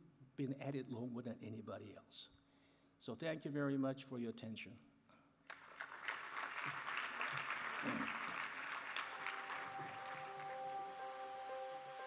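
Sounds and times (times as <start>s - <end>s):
audience applauding: 5.5s - 11.4s
soft music with held notes: 9.1s - 12.0s.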